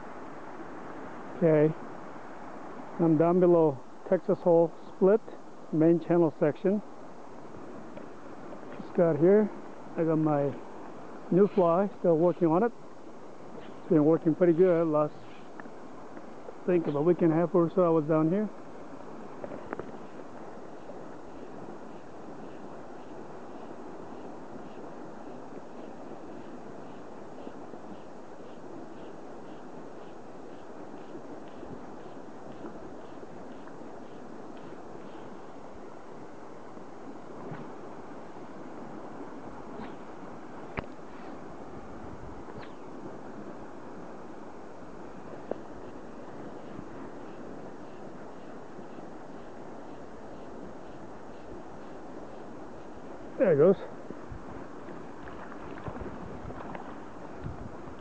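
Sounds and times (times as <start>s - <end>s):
flowing river water: 0.0s - 58.0s.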